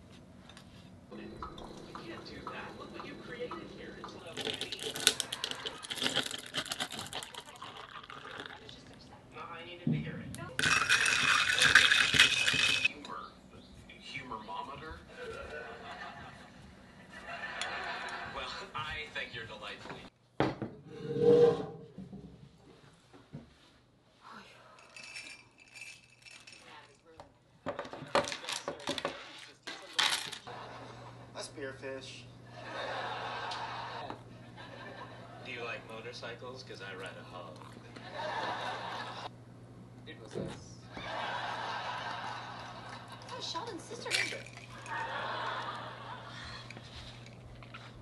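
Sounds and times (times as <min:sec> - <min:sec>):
ice crackling and clinking: 0:04.1 - 0:08.9, 0:10.6 - 0:12.9, 0:44.0 - 0:45.0
liquid pouring stream: 0:04.4 - 0:08.8.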